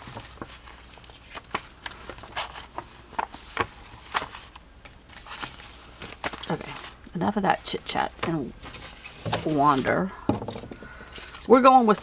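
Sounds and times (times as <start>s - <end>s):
paper pages turning and rustling: 0.0s - 7.0s, 8.2s - 12.0s.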